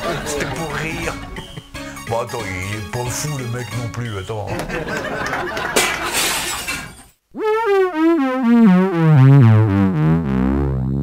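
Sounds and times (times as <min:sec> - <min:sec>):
glass shattering: 0:05.8 - 0:07.2.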